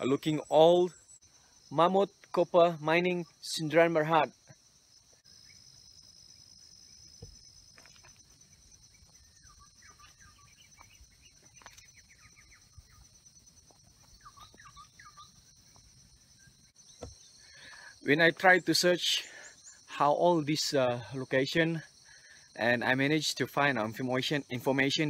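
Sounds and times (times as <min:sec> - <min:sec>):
high-pitched insect drone: 0:00.0 - 0:23.2
soft bird chirps: 0:05.0 - 0:20.2.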